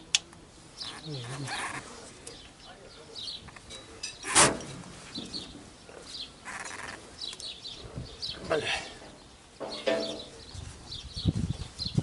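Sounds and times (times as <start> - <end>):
small birds chirping: 0.0 - 4.4, 5.0 - 12.0.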